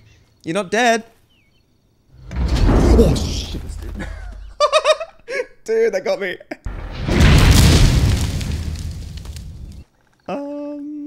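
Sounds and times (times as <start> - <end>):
deep metallic impact boom: 6.7 - 9.8.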